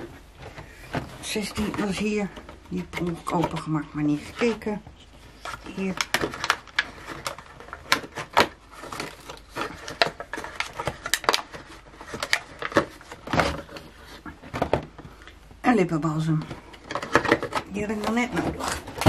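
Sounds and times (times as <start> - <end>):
cardboard crackling and clicking: 0.0 - 15.4, 16.2 - 19.0.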